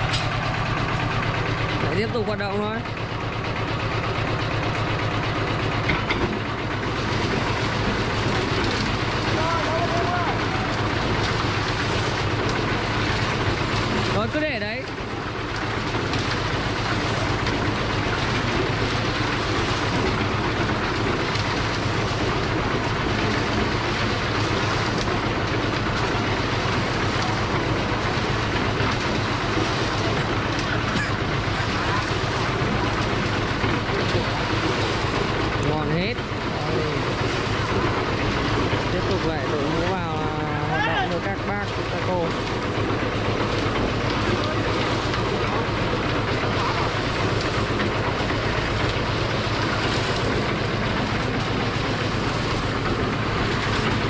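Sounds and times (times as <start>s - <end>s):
concrete mixer churning drone: 0.0s - 54.0s.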